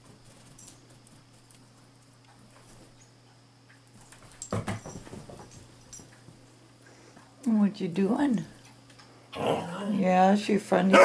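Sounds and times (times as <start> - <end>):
thumps and knocks: 4.3 - 5.6.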